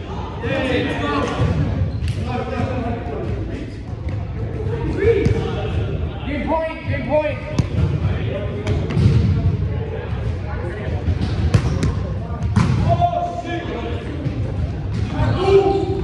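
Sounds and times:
players' voices in echoing gym: 0.0 - 16.0
volleyball slaps: 7.5 - 8.0, 11.2 - 13.0.

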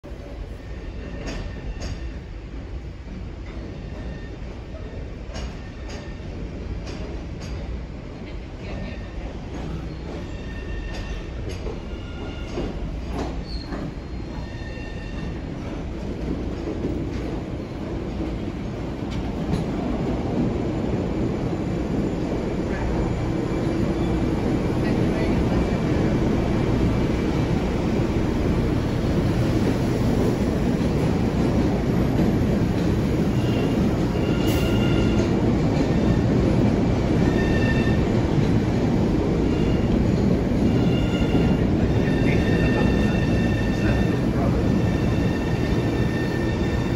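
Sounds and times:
subway train rumble: 0.0 - 46.9
high wheel squeals: 13.4 - 15.4.

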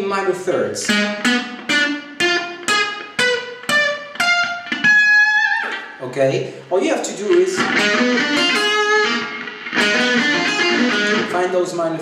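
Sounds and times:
electric guitar arpeggio: 0.0 - 6.0, 7.2 - 12.0.

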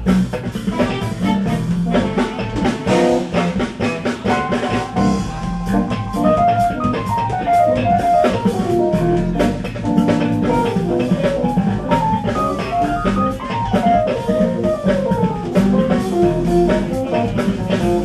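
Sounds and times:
smooth jazz trio playing: 0.0 - 18.0.

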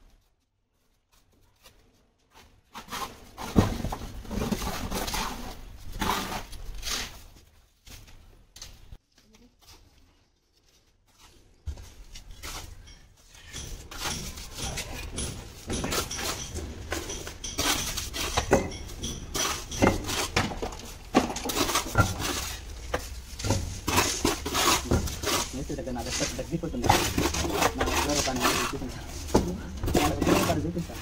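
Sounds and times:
trowels scraping mortar: 2.7 - 7.3, 12.3 - 31.0
bricks set into mortar: 12.4 - 31.0.

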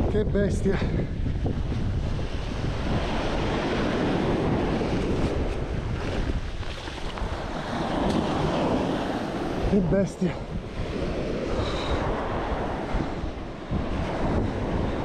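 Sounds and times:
wind rumbling on microphone: 0.0 - 15.0
sea waves washing on shore: 1.2 - 15.0.

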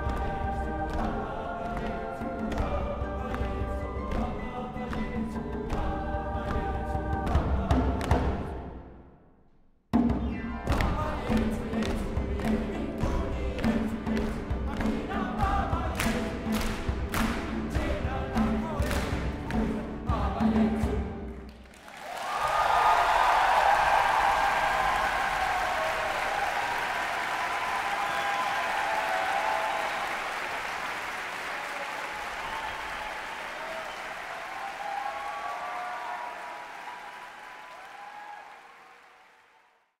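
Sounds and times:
choir singing: 0.0 - 8.9, 10.6 - 21.4
drum beats: 9.9 - 21.4
audience applause: 21.5 - 40.0
audience cheering: 21.7 - 39.9.

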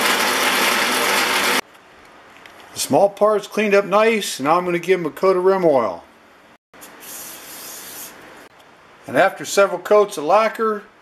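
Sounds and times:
aerosol can spraying hiss: 6.8 - 8.2.

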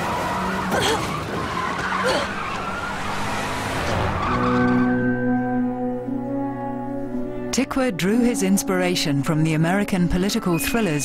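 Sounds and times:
car noise: 0.0 - 7.3.

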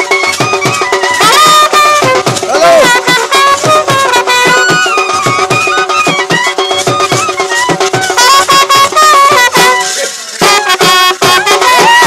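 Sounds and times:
hand drums beating fast: 0.0 - 12.0
wind instrument melody: 0.0 - 12.0.

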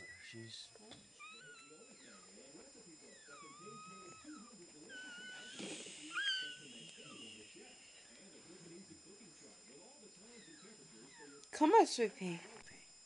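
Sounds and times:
puppy crying: 1.2 - 2.4, 3.1 - 6.6.

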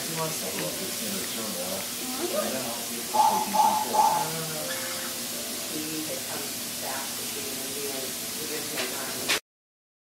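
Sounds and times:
faint indistinct voices: 0.0 - 9.4
steady hiss: 0.0 - 9.4.

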